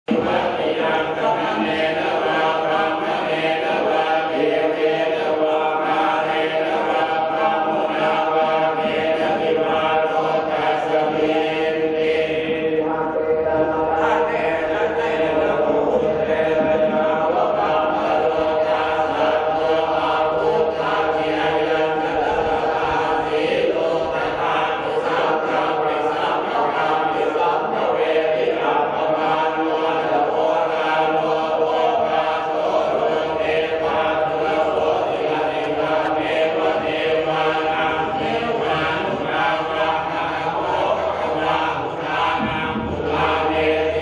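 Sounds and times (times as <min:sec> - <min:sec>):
men chanting in unison: 0:00.0 - 0:44.0.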